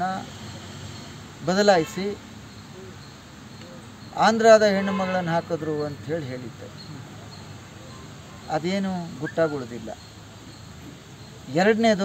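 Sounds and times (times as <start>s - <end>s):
outdoor background noise: 0.0s - 12.0s
man speaking: 1.4s - 2.2s, 4.2s - 7.1s, 8.5s - 10.0s, 11.5s - 12.0s.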